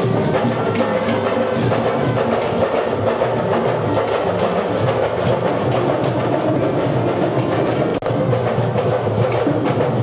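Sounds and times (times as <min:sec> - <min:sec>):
percussion-driven music: 0:00.0 - 0:10.0.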